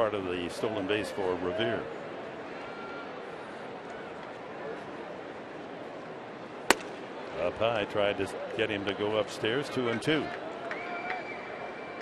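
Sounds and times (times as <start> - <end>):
crowd murmur: 0.0 - 10.7
ball popping into mitt: 6.7 - 7.0.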